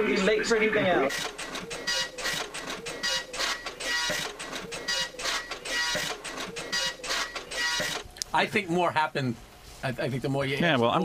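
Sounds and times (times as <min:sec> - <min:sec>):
printer printing: 0:00.6 - 0:08.1.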